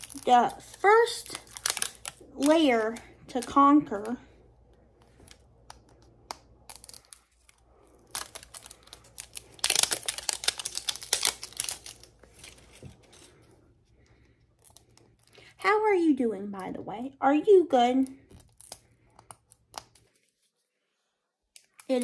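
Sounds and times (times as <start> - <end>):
wrapping crinkling and tearing: 0.0 - 15.6, 17.9 - 20.7, 21.4 - 22.0.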